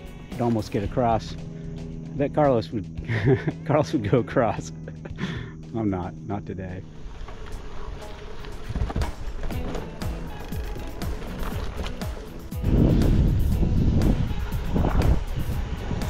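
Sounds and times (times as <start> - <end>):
background music: 0.0 - 16.0
low rumble of wind: 4.8 - 16.0
bicycle rattling on dirt road: 6.9 - 15.9.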